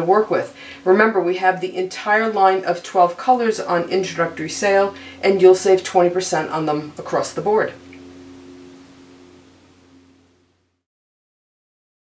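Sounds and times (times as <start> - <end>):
low steady hum: 0.0 - 10.8
faint held tones: 1.6 - 10.7.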